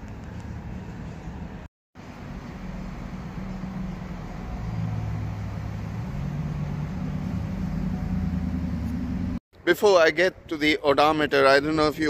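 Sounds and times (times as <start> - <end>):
vehicle engine idling: 2.0 - 9.4.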